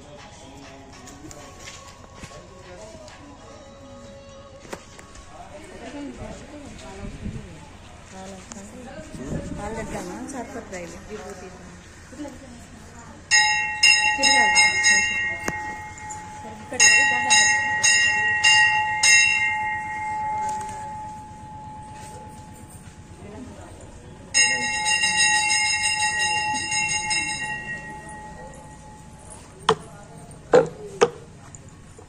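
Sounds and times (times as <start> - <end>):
brass bell ringing: 13.3 - 23.7, 24.3 - 29.6.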